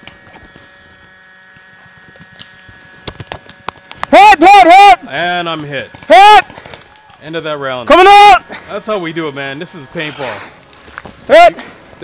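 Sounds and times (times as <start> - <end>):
paintball hopper motor whining: 0.0 - 12.0
sharp cracks: 1.8 - 4.8, 5.7 - 7.4.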